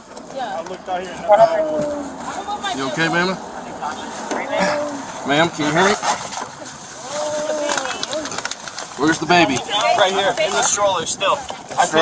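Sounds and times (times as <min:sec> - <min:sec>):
camera rustling and scraping: 0:03.8 - 0:11.9
person crying out: 0:04.5 - 0:05.0.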